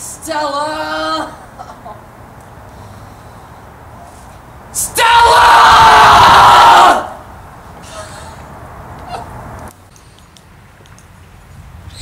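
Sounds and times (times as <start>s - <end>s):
person shouting: 4.8s - 7.1s.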